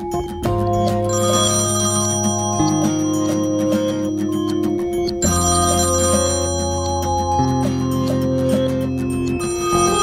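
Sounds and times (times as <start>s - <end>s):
phone ringtone music: 0.0s - 10.0s.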